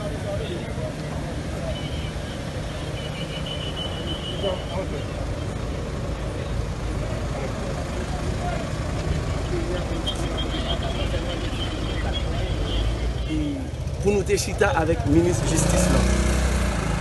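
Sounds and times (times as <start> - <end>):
murmur of voices: 0.0 - 17.0.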